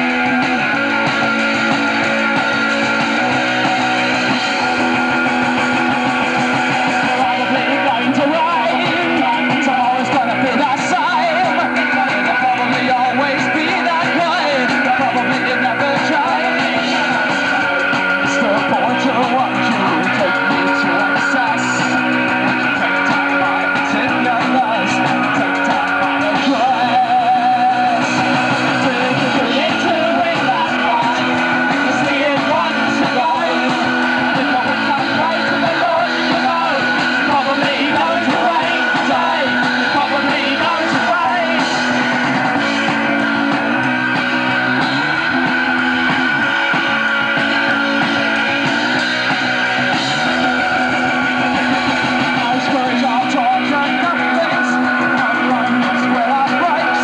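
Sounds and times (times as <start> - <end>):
man singing: 0.0 - 43.0, 45.6 - 57.0
punk rock band playing: 0.0 - 57.0.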